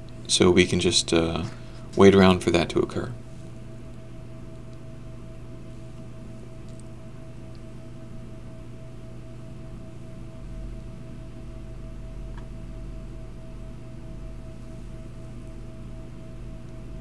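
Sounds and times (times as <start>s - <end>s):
electrical hum: 0.0s - 17.0s.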